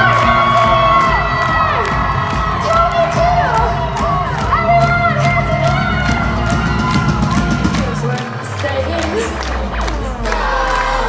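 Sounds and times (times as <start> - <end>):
live pop band through pa: 0.0 - 11.0
steady rhythmic drum beat: 0.0 - 11.0.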